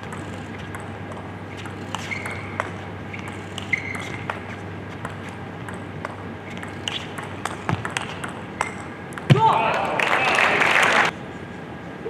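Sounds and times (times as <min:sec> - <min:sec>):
table tennis ball clicking: 0:00.0 - 0:09.3.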